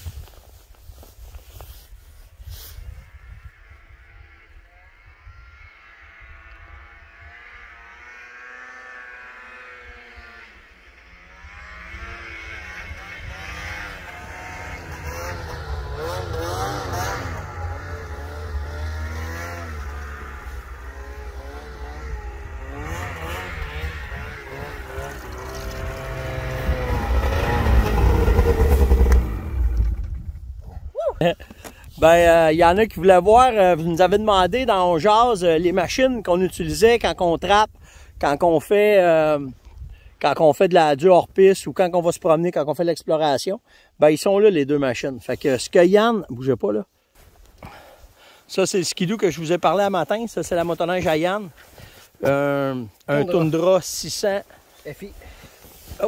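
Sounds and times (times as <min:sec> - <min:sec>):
snowmobile engine revving: 0:01.4 - 0:30.3, 0:48.7 - 0:56.0.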